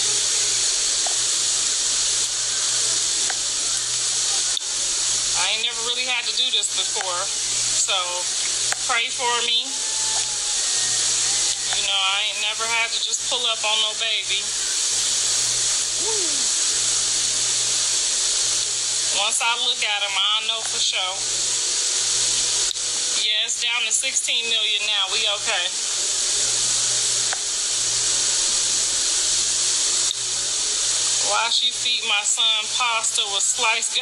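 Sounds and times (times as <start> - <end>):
steady hiss: 0.0 - 34.0.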